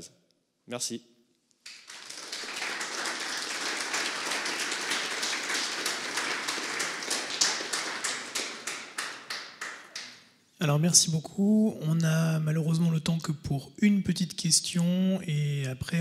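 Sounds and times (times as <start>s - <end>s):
audience applause: 1.7s - 10.2s.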